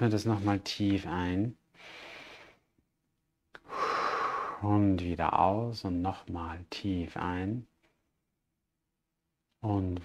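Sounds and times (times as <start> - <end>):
man breathing deeply: 3.6 - 4.7.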